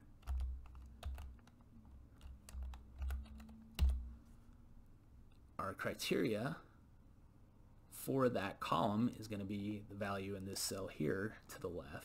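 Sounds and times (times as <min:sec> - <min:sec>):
computer keyboard typing: 0:00.2 - 0:01.6, 0:02.2 - 0:04.1.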